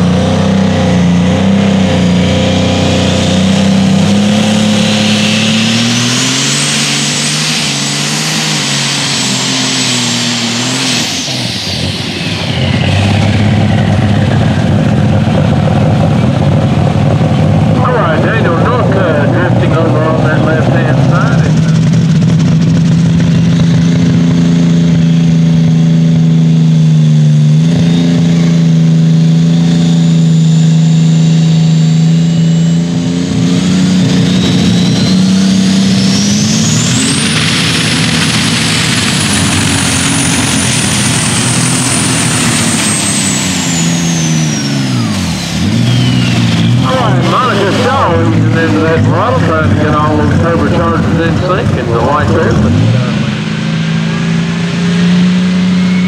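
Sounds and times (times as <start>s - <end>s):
diesel tractor engines revving: 0.0s - 56.0s
voice over public address: 17.8s - 21.8s, 46.8s - 53.2s
high turbo whistle: 33.6s - 48.0s, 52.7s - 56.0s.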